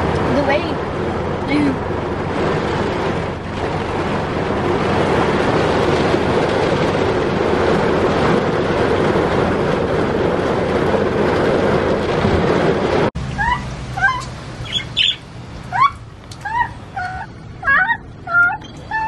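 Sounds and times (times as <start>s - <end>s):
budgerigars chirping: 13.4s - 18.8s.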